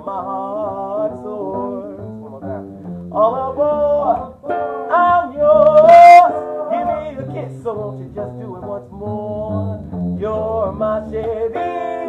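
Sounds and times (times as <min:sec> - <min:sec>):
acoustic guitar: 0:00.0 - 0:12.0.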